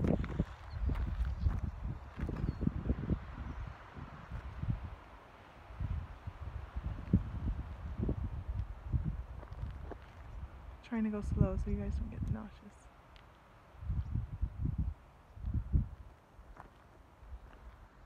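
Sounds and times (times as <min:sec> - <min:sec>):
microphone handling rumble: 0:00.0 - 0:03.3
wind on microphone: 0:00.0 - 0:05.1, 0:05.7 - 0:12.7, 0:13.8 - 0:16.1.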